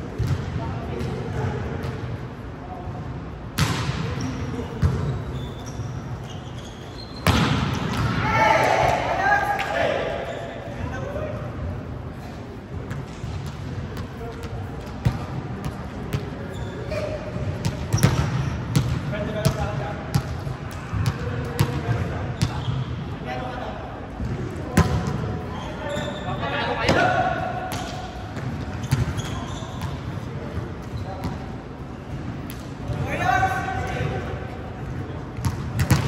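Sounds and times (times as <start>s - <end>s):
players calling and chattering: 0.0s - 36.0s
volleyball slaps on gym floor: 3.6s - 4.1s, 7.2s - 9.8s, 24.7s - 25.2s, 35.4s - 36.0s.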